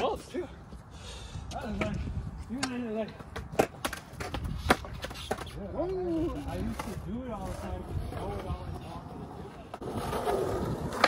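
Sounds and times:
skateboard clacking on concrete: 2.6 - 11.0.

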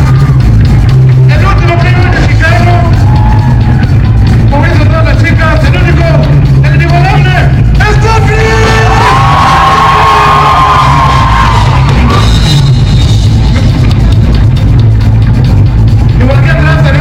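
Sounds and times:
people shouting: 8.4 - 12.3.

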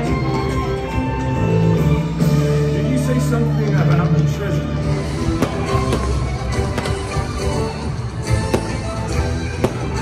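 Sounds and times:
rock band playing: 4.9 - 10.0
sharp cracks: 8.5 - 8.9.

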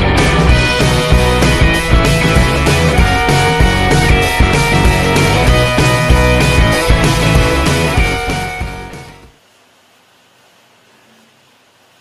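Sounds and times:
rock music: 0.0 - 9.3.

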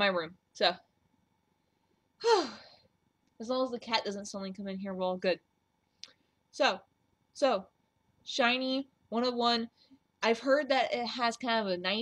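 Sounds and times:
woman sighing: 2.2 - 2.9.

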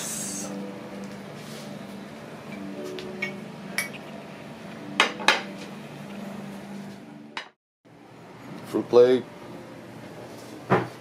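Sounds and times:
dishes clinking on a table: 3.2 - 4.1, 5.0 - 5.6.

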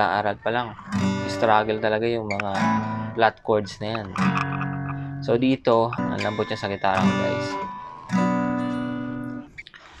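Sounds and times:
acoustic guitar chord strummed: 0.0 - 9.6.

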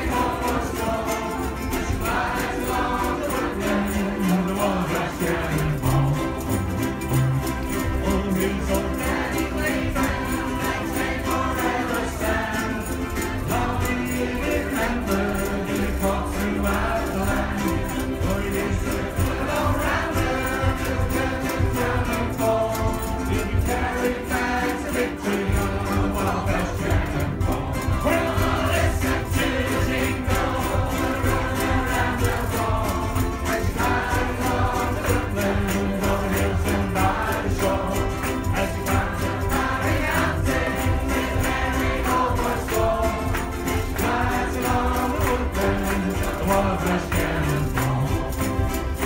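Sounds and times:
group singing along: 0.0 - 49.0
ukuleles strumming: 0.0 - 49.0.

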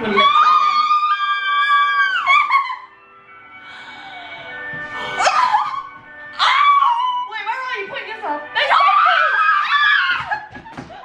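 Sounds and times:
woman squealing with excitement: 0.0 - 2.9, 8.7 - 10.5
laughter: 10.2 - 11.0.

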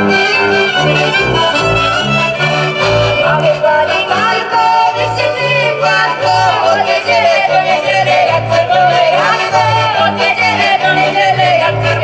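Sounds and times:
double bass: 0.0 - 12.0
fiddles and accordion folk tune: 0.0 - 12.0.

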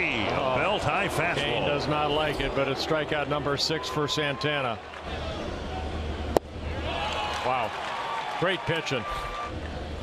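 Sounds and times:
ballpark crowd noise: 0.0 - 10.0.

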